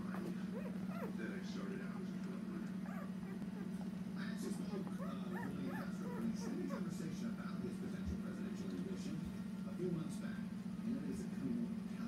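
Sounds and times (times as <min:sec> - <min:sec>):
puppies squeaking and whimpering: 0:00.0 - 0:07.1
steady low hum: 0:00.0 - 0:12.0.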